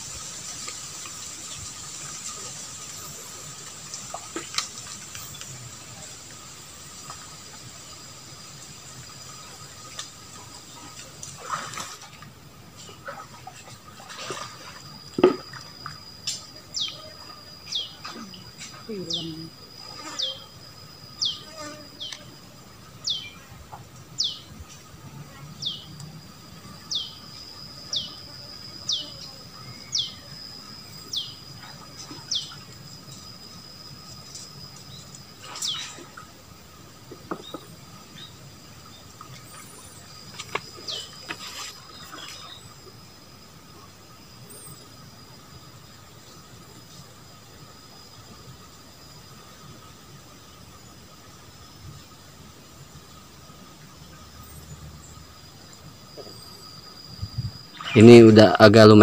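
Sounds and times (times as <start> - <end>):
high-pitched insect drone: 14.7 - 52.4.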